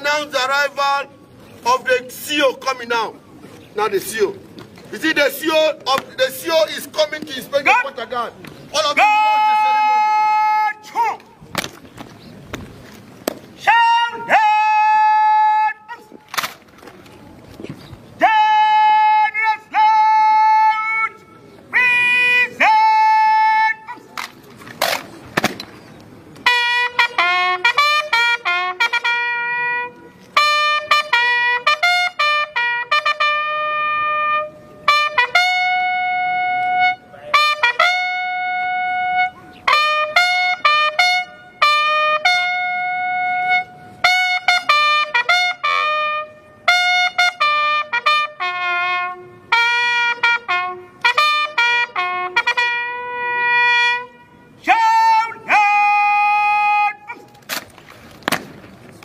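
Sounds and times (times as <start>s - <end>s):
boots stamping: 11.5s - 13.5s
solo bugle call: 18.2s - 24.0s, 26.4s - 57.2s.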